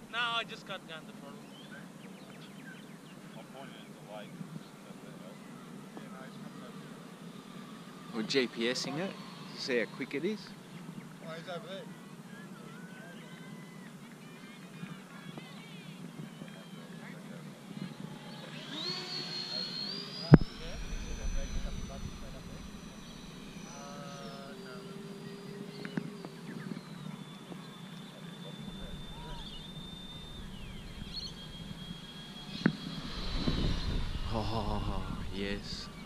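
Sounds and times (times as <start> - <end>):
electric ducted fans whining: 0.0 - 36.0.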